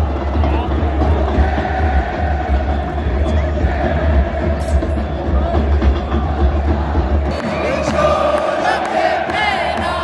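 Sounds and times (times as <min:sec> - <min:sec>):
football crowd chanting: 0:00.4 - 0:10.0.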